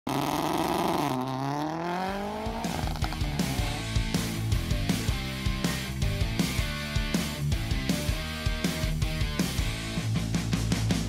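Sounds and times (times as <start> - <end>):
car engine revving and accelerating: 0.1 - 4.5
rock music with drum beat: 2.2 - 11.0.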